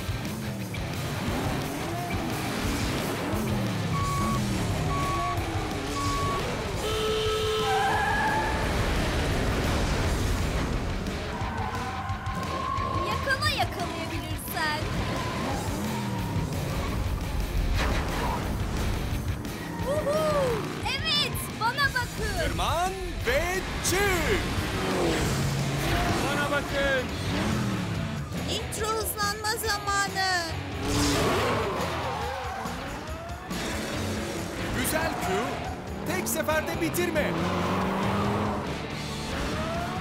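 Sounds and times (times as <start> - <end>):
background music: 0.0 - 40.0
race car engines revving: 0.0 - 40.0
countdown beeps: 3.9 - 6.5.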